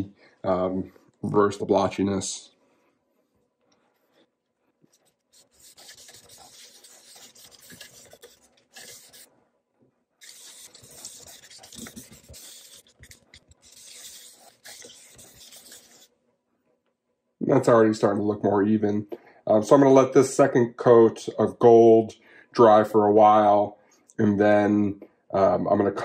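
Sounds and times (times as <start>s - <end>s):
cloth rag rubbing on wood: 5.2s - 9.3s, 10.2s - 16.1s.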